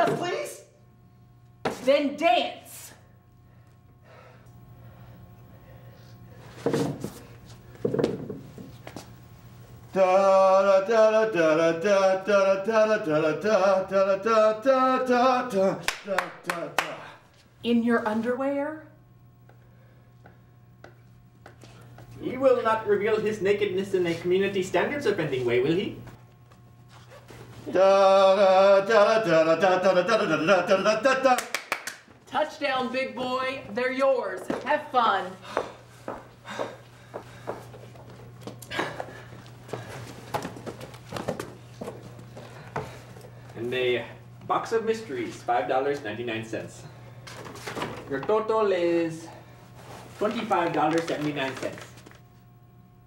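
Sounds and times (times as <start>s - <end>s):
sharp hand claps: 15.8s - 17.0s, 31.3s - 32.1s.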